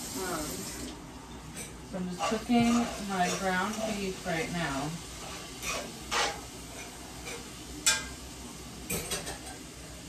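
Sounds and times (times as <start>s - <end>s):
meat sizzling in a frying pan: 0.0s - 1.0s, 1.8s - 10.0s
utensil scraping a pan: 2.0s - 8.1s.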